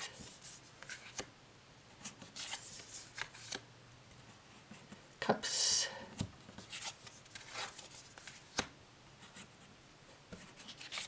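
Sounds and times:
cards sliding and tapping: 0:00.0 - 0:01.3, 0:02.0 - 0:03.6.

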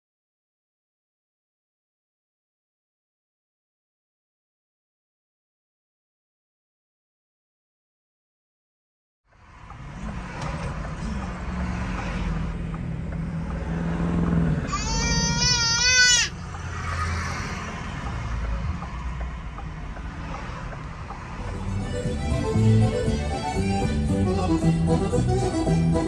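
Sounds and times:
car engine and road rumble: 0:09.3 - 0:26.0
high-pitched wavering cry: 0:14.7 - 0:17.3.

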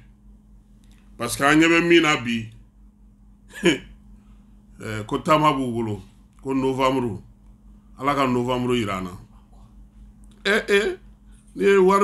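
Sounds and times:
man speaking: 0:01.2 - 0:02.5, 0:04.8 - 0:07.2, 0:08.0 - 0:09.3, 0:10.4 - 0:11.0, 0:11.6 - 0:12.0.

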